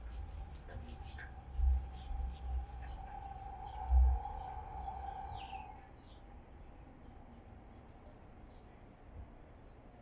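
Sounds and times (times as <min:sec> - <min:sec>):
steady hum: 0:00.0 - 0:10.0
bird calling: 0:01.2 - 0:06.2.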